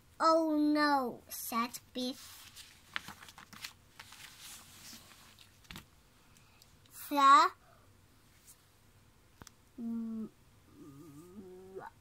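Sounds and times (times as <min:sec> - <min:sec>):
book pages rustling: 0:02.0 - 0:05.9.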